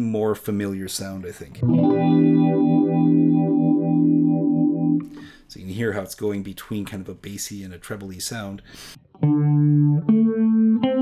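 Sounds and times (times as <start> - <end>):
electric guitar chord with phaser: 1.6 - 5.1, 9.2 - 11.0.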